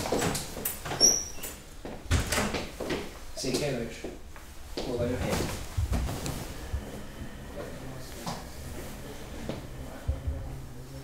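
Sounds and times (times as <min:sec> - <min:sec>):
door opening and closing: 0:00.0 - 0:02.7.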